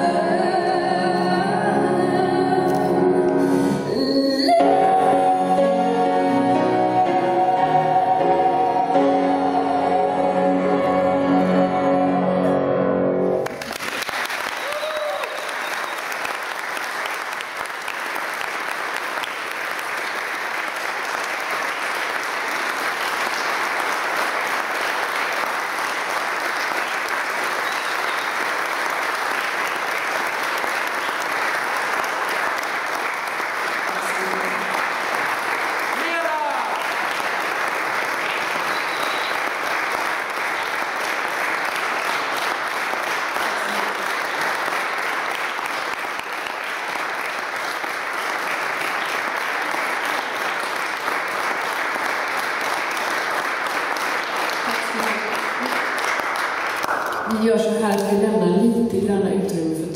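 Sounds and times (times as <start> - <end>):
audience applauding: 13.4 - 57.6
rising whoop: 14.6 - 15.5.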